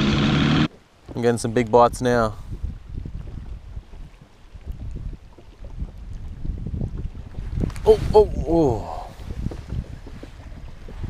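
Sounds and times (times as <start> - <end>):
wind buffeting microphone: 1.9 - 11.0
water lapping against boat hull: 2.5 - 11.0.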